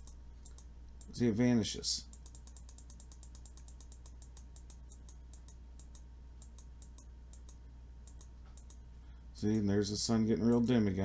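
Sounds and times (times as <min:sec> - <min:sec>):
computer mouse clicks: 0:00.0 - 0:01.2, 0:02.1 - 0:08.8
low electrical hum: 0:00.0 - 0:11.0.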